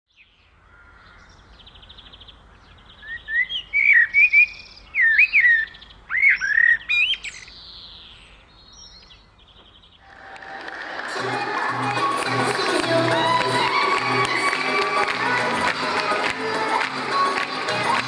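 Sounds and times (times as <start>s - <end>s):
birds chirping and singing: 0.2s - 10.0s.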